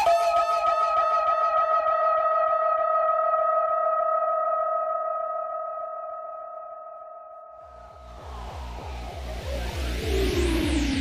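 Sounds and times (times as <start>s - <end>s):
warbling synth tone: 7.8s - 11.0s.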